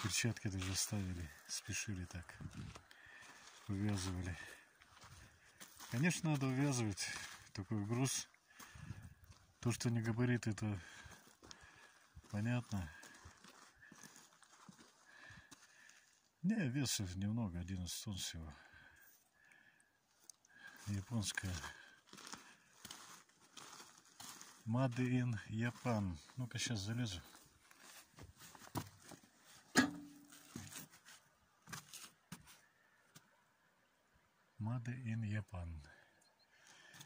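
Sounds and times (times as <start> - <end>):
knocks and scrapes of climbing: 27.7 - 32.7
sharp metallic knock: 29.8 - 30.3.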